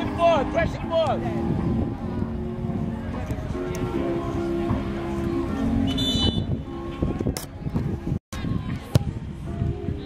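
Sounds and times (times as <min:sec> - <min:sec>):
voices of spectators and players: 0:00.0 - 0:10.0.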